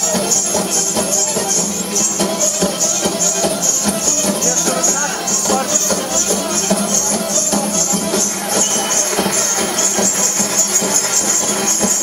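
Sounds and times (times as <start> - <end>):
frame drums beaten with jingles: 0.0 - 12.0.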